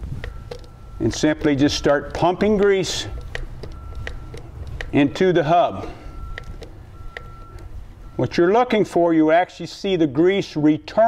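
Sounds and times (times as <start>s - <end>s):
grease gun lever clicks: 0.2s - 5.0s, 6.3s - 7.7s.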